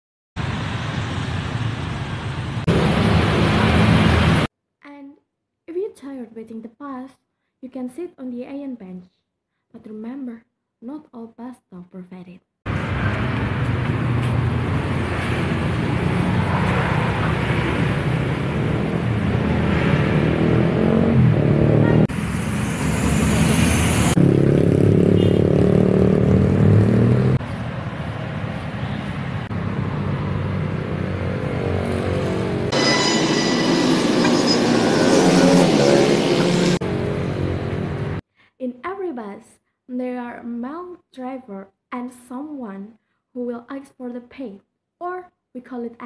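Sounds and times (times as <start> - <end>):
cars and motorbikes passing: 0.4 - 4.5, 12.7 - 38.2.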